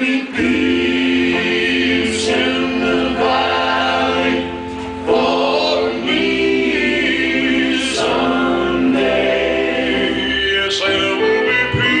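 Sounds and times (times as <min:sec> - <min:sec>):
choir-like backing voices: 0:00.0 - 0:12.0
man singing gospel song: 0:10.0 - 0:12.0.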